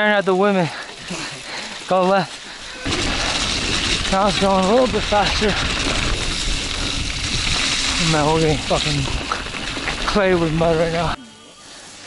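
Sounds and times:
bike tyres splashing through mud: 0.0 - 11.2
trail rumble: 0.2 - 11.2
wind rushing: 2.9 - 10.6.

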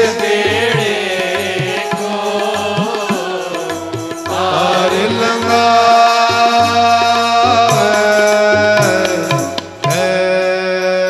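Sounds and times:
held instrumental notes: 0.0 - 10.7
devotional chanting: 0.0 - 11.0.

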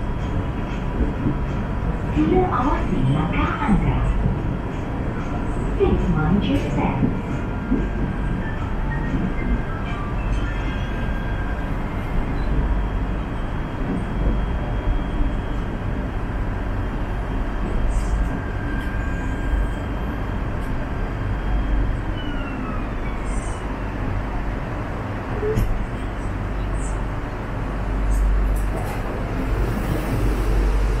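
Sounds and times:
train wheels rumbling on rail: 0.0 - 31.0.

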